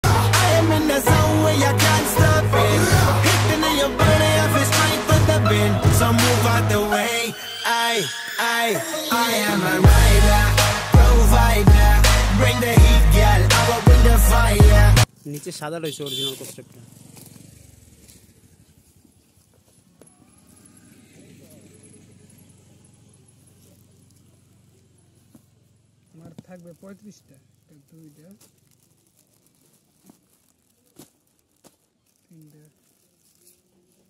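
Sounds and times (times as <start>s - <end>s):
sharp plastic crackles: 26.0s - 34.0s
plastic packaging crinkling: 26.4s - 34.0s.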